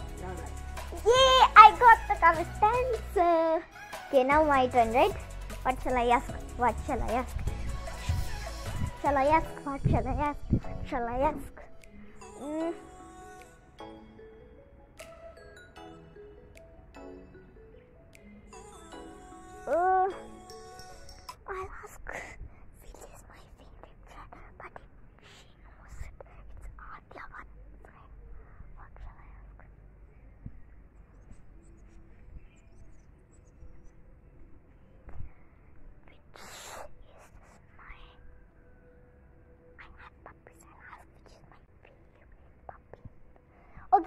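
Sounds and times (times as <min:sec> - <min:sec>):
wind rumble on microphone: 0:07.5 - 0:11.0
soft whispering: 0:21.4 - 0:33.7, 0:34.7 - 0:38.5, 0:39.7 - 0:44.0.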